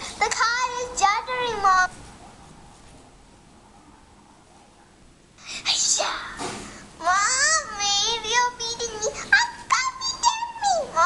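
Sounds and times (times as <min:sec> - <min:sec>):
child's voice through speaker: 0:00.1 - 0:02.0, 0:05.6 - 0:11.0.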